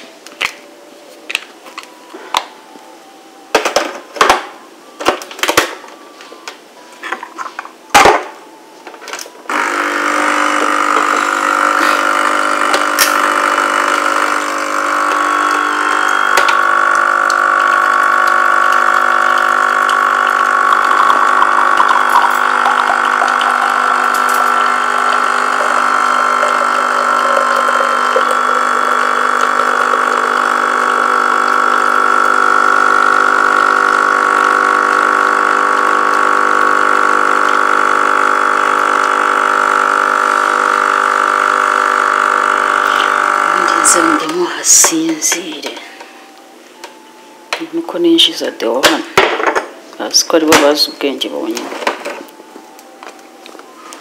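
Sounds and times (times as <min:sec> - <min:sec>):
coffee streaming into cup: 0:09.5 - 0:45.7
coffee machine pump humming: 0:09.5 - 0:49.7.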